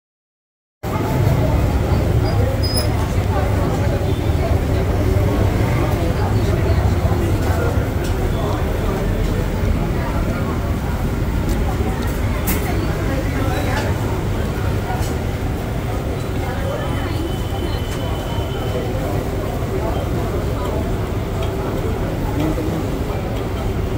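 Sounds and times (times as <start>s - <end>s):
people chattering: 0.8s - 23.9s.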